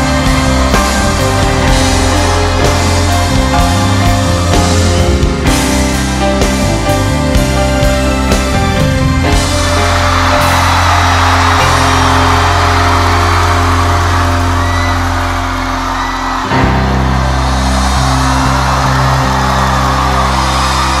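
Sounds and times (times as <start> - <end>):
audience cheering: 0.0 - 21.0
live concert music with low chords: 0.0 - 21.0.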